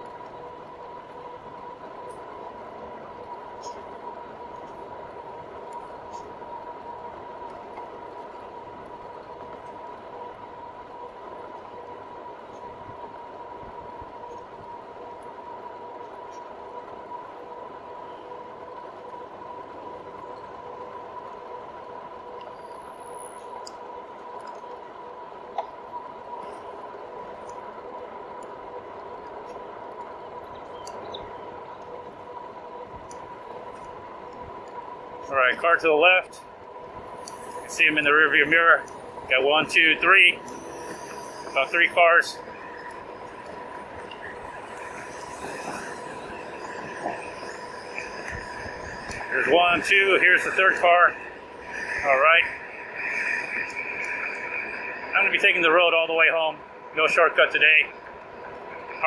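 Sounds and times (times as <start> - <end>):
road and wind noise: 0.0 - 59.0.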